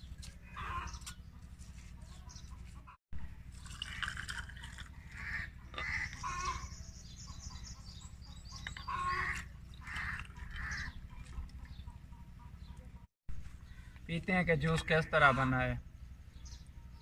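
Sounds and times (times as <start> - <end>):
juice pouring over ice: 3.5 - 4.9.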